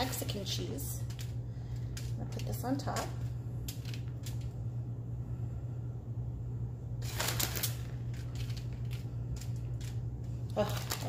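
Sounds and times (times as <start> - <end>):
steady low hum: 0.0 - 11.0
cheese rustling scattered by hand: 7.0 - 11.0
crinkling rustle: 7.0 - 11.0.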